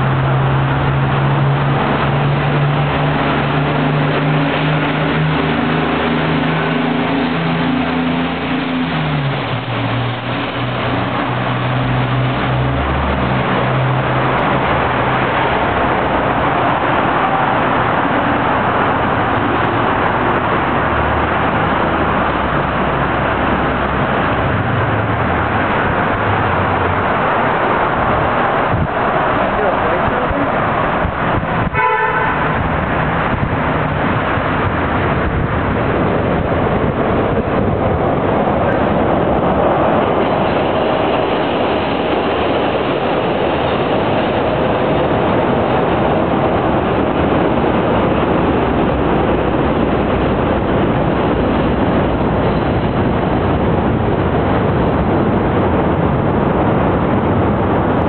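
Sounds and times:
passing traffic: 0.0s - 58.0s
vehicle engine humming: 0.0s - 58.0s.

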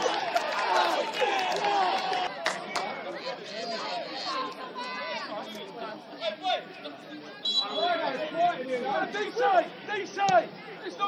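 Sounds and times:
overlapping voices calling out: 0.0s - 7.0s.

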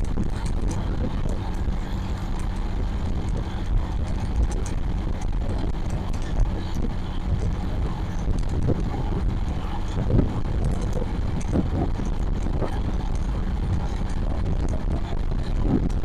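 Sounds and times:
motorcycle engine running: 0.0s - 16.0s
wind rumble on microphone: 0.0s - 16.0s.

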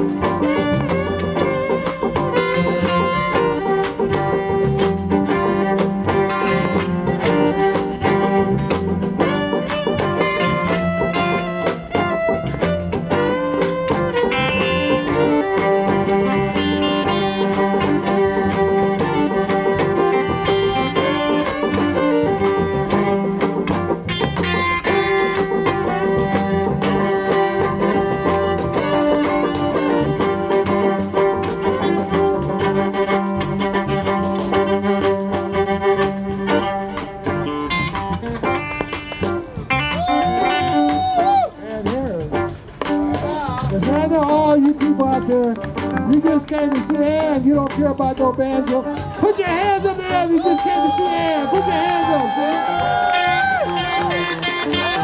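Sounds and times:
banjo picking: 0.0s - 55.0s
electric guitars: 0.0s - 55.0s
fiddle: 0.0s - 55.0s.

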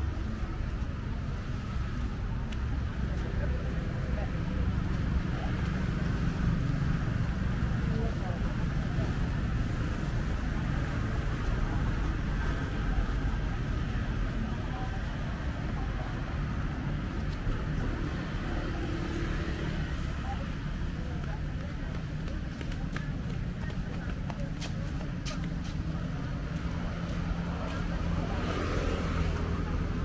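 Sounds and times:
road traffic rumble: 0.0s - 30.0s.

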